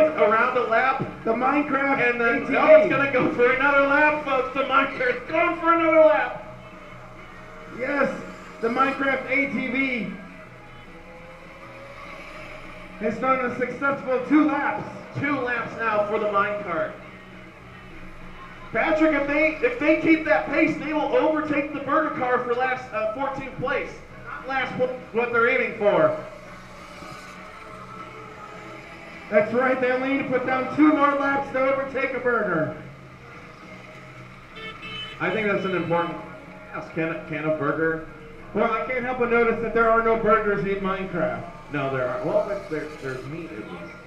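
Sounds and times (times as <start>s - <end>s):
electric kart passing: 0.0s - 44.0s
electric ride-on racers whirring: 0.0s - 44.0s.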